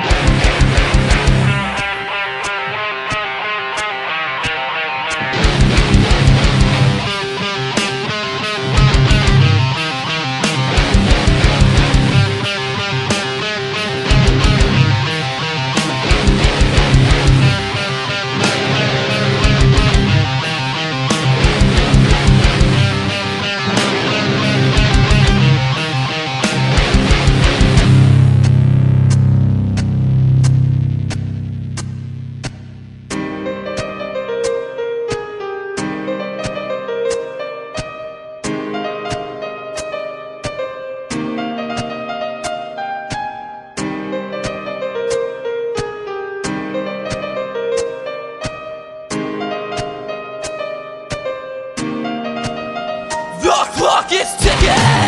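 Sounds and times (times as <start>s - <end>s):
heavy rock band playing: 0.0s - 28.5s, 53.4s - 55.0s.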